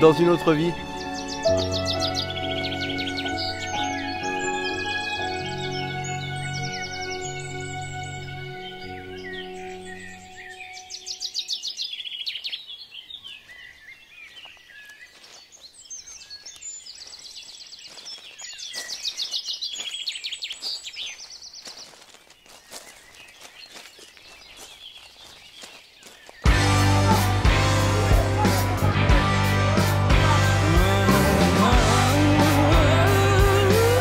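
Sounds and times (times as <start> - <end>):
soft sustained music: 0.0 - 11.6, 26.5 - 34.0
birds chirping and trilling: 0.0 - 34.0
loud rock music: 26.5 - 34.0.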